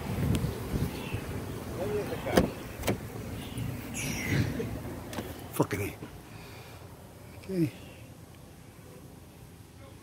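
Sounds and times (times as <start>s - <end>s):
low rumbling handling noise: 0.0s - 6.2s
car door clicks: 2.3s - 3.1s.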